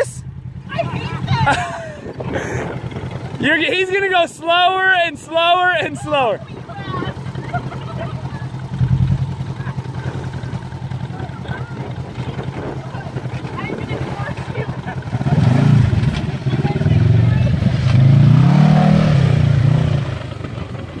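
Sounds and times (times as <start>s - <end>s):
engine revving: 0.0s - 21.0s
off-road vehicle engine chugging: 0.0s - 21.0s.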